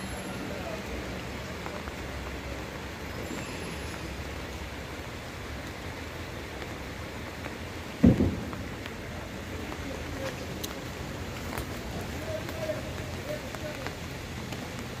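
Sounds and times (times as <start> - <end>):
heavy rain on water and foliage: 0.0 - 15.0
low thump: 8.0 - 8.7.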